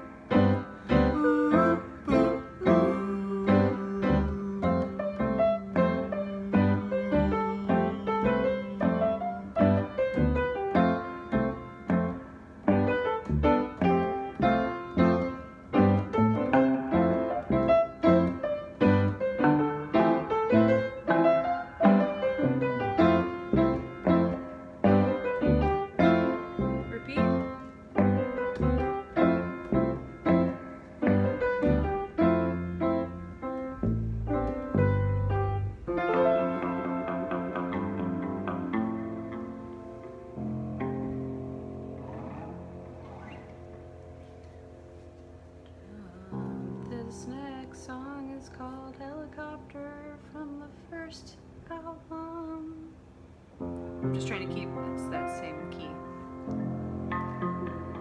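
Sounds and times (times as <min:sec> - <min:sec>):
keyboard playing chords and melody: 0:00.0 - 0:46.3.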